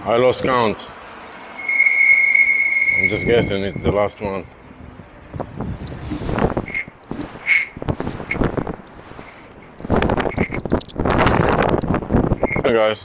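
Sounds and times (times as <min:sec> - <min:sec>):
brief high squeaks: 0:01.5 - 0:04.0
wind buffeting microphone: 0:02.9 - 0:12.8.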